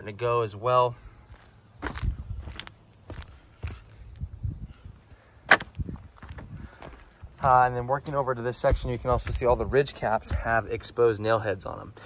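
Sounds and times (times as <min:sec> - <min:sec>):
footsteps on shingle roof: 0:01.1 - 0:04.3, 0:05.5 - 0:11.2.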